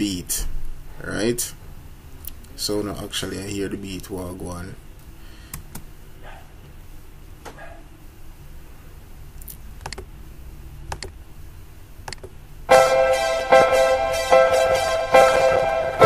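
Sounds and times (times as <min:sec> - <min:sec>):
computer mouse clicks: 0:09.4 - 0:10.1, 0:10.9 - 0:11.2, 0:12.1 - 0:12.3
song beat with keyboard chords: 0:12.7 - 0:16.0.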